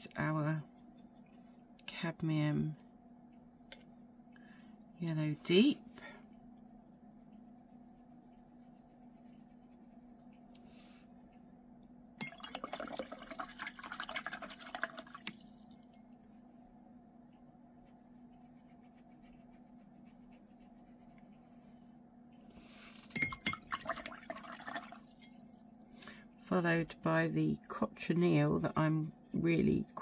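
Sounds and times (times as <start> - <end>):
brush swishing in water: 0.6 - 1.4
brush clinking against glass: 23.0 - 23.8.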